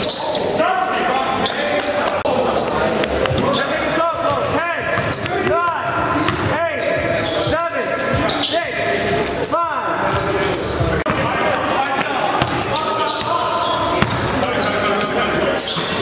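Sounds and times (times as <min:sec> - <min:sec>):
players' voices in hall: 0:00.0 - 0:16.0
sneakers squeaking: 0:00.0 - 0:16.0
basketball bouncing: 0:04.9 - 0:07.2, 0:12.0 - 0:13.4, 0:14.0 - 0:14.4.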